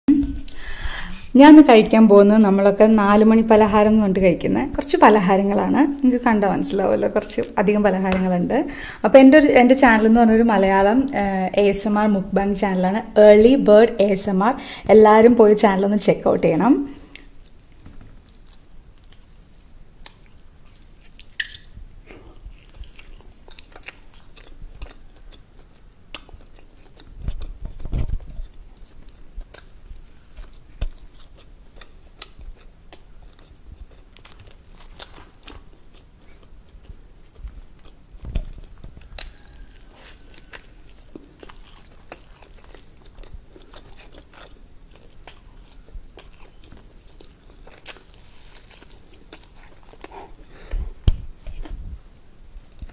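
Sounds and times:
chewing with wet clicks: 17.1s - 51.8s
wet mouth sounds: 20.0s - 28.5s.

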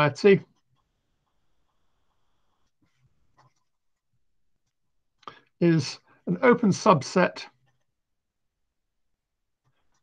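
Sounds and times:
marker pen writing on paper: 0.5s - 4.1s.

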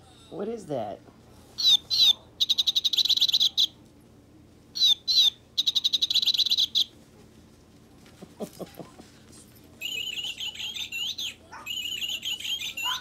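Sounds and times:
toy squeaker bird call: 1.6s - 3.8s, 4.8s - 6.9s, 9.8s - 13.0s.

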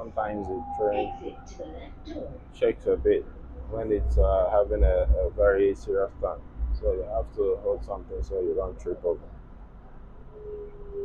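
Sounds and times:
train car rumbling: 0.0s - 11.0s.

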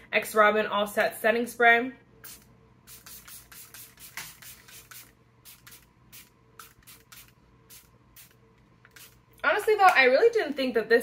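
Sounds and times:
spray bottle pumping puffs: 2.3s - 9.2s.

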